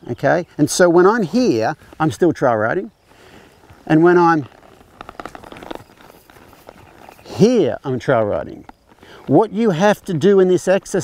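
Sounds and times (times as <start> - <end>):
horse hooves on dirt: 0.0 - 11.0.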